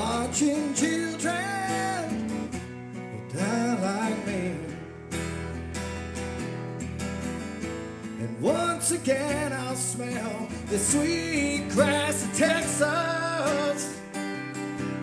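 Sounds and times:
man singing country song: 0.0 - 5.6, 8.0 - 15.0
strummed acoustic guitar: 0.0 - 15.0.

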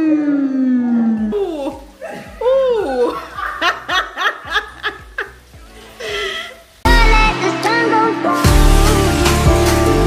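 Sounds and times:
person laughing: 1.4 - 5.4.

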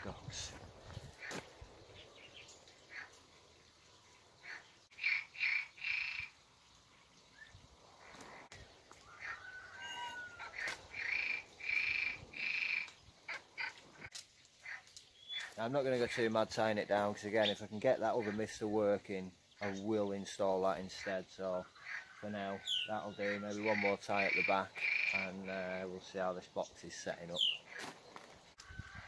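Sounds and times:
bird calling: 0.0 - 3.3, 4.1 - 6.4, 7.1 - 15.7, 17.0 - 26.3, 26.9 - 29.0
wire and reed cane rustling: 7.9 - 17.5.

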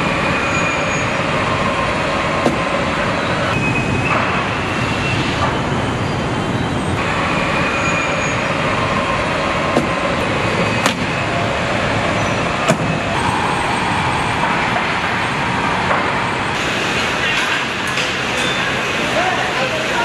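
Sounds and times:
machinery hum and hiss: 0.0 - 20.0
sharp knocks: 2.4 - 2.8, 9.7 - 10.0, 12.6 - 13.0.

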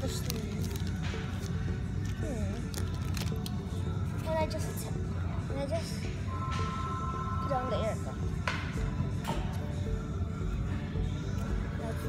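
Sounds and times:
plastic bag crinkling: 0.0 - 3.6
background music: 0.0 - 12.0.

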